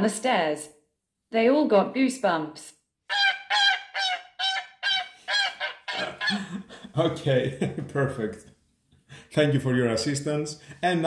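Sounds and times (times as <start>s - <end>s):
goose honking from small speaker: 3.1s - 6.4s.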